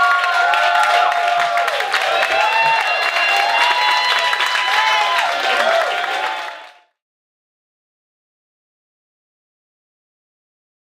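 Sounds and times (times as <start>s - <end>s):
voices whooping and cheering: 0.0s - 6.8s
audience clapping: 0.0s - 7.0s.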